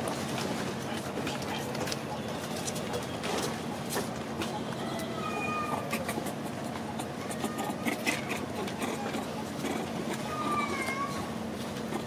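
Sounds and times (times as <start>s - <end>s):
short high animal calls: 4.8s - 6.3s.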